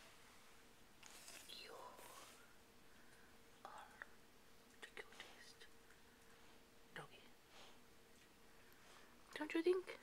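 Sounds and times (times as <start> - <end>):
faint steady hum: 0.0 - 10.0
faint whispered voice: 1.2 - 2.5, 3.6 - 5.8.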